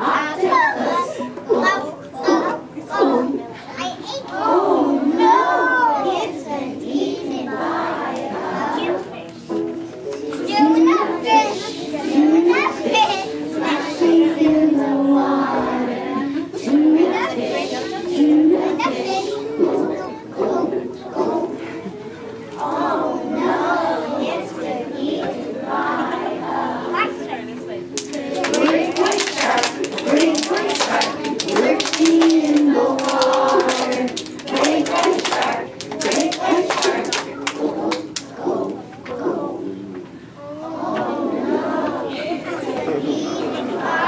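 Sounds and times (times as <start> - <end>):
children singing: 0.0 - 3.5, 4.3 - 9.2, 10.4 - 27.3, 28.0 - 39.8, 40.5 - 44.0
children clapping: 28.0 - 38.4.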